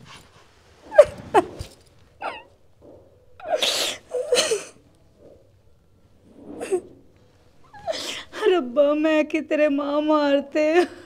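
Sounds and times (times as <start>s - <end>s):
woman sobbing: 2.2s - 2.5s, 3.4s - 4.8s, 10.6s - 11.0s.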